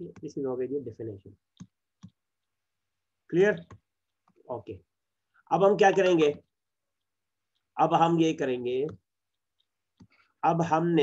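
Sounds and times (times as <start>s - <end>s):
computer mouse clicks: 1.5s - 2.6s, 8.7s - 10.3s.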